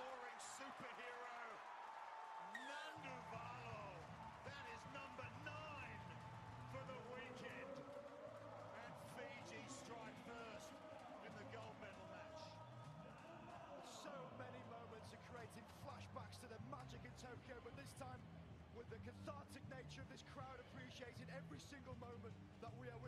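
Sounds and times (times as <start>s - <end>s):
crowd voices: 0.0s - 21.1s.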